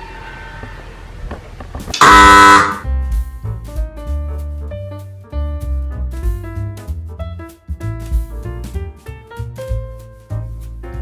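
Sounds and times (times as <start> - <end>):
background music with bass and piano: 1.9 - 11.0
level crossing warning horn blast: 2.0 - 2.9.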